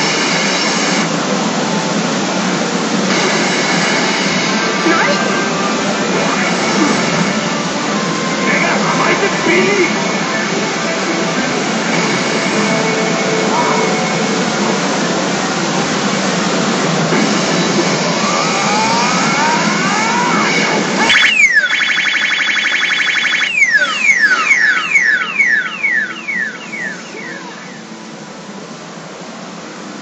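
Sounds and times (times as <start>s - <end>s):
electronic machine music and effects: 3.0s - 28.4s
falling-pitch sweeps: 18.0s - 27.9s.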